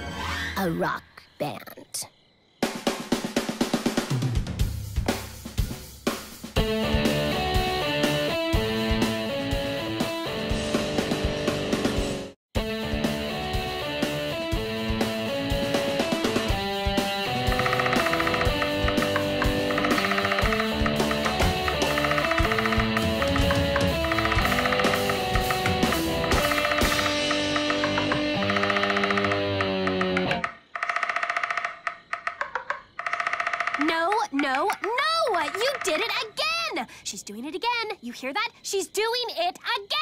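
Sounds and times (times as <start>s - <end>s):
drum kit: 2.6s - 30.3s
rock band playing: 6.6s - 30.4s.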